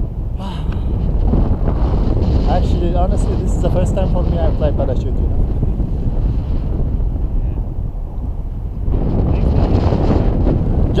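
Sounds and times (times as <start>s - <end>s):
wind rushing over microphone: 0.0s - 11.0s.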